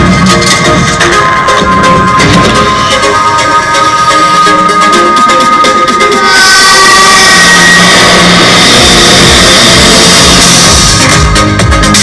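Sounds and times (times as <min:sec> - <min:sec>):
electronic beat: 0:00.0 - 0:12.0.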